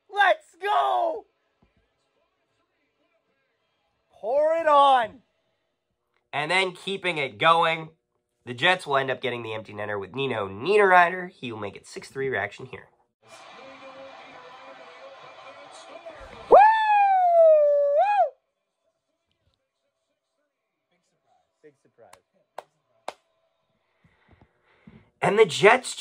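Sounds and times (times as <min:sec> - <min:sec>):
man whooping: 0:00.0 - 0:01.2, 0:16.4 - 0:18.4.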